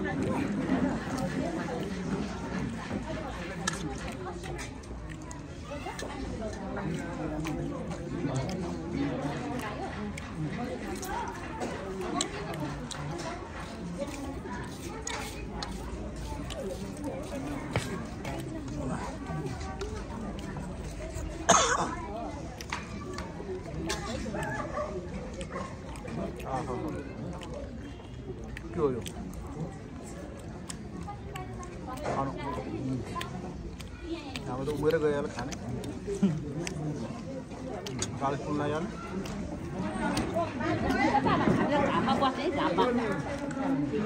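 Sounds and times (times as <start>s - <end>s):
background voices talking: 0.0s - 44.0s
people chattering: 0.0s - 44.0s.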